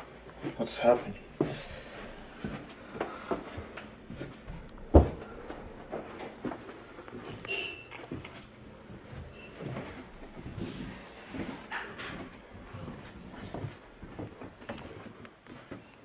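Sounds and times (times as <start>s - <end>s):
footsteps on stairs: 0.0s - 7.4s, 8.1s - 15.8s.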